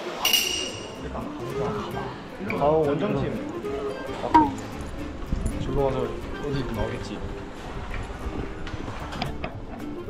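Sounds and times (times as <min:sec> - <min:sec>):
bright ding: 0:04.4 - 0:04.6.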